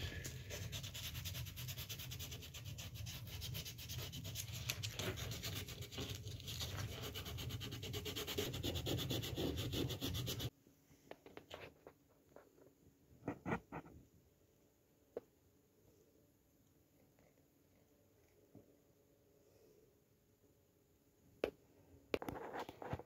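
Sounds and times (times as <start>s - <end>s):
hand sanding wood: 0.0s - 10.5s.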